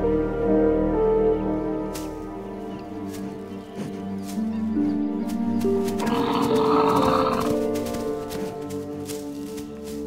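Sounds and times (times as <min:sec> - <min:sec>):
background music with held notes: 0:00.0 - 0:10.0
bison bellowing: 0:06.0 - 0:08.5.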